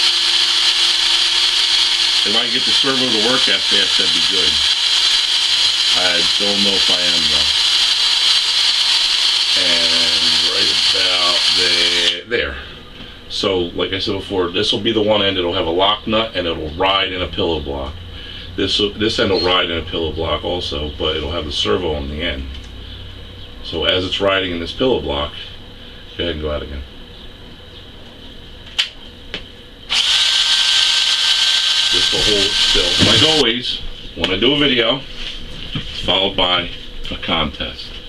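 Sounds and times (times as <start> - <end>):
servo motor whining: 0.0 - 12.2, 29.9 - 33.4.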